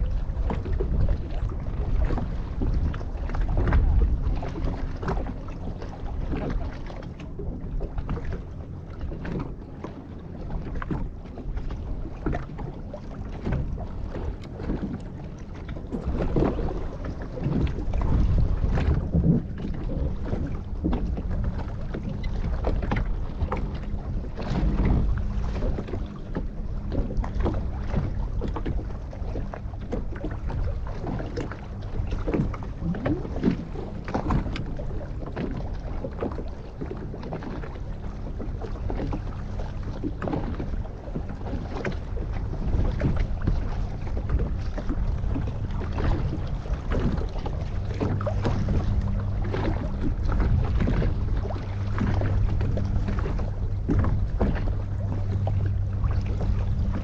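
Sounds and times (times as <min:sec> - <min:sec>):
waves slapping boat hull: 0:00.0 - 0:57.0
wind rumbling on microphone: 0:00.0 - 0:57.0.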